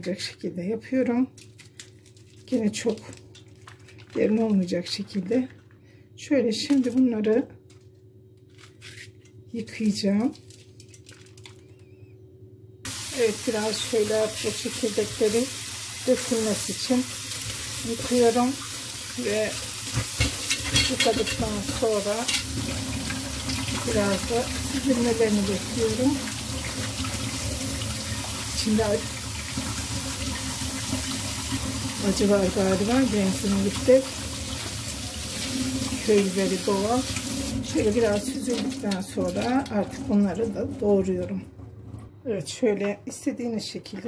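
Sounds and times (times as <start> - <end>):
woman speaking: 0.0 - 1.4, 2.5 - 3.2, 4.1 - 5.6, 6.2 - 7.6, 9.5 - 10.4, 13.1 - 17.1, 17.8 - 18.6, 19.2 - 19.6, 20.8 - 22.4, 23.8 - 26.2, 28.6 - 29.1, 32.0 - 34.1, 36.0 - 37.1, 37.7 - 41.5, 42.2 - 44.0
tap water pouring into colander: 12.9 - 41.0.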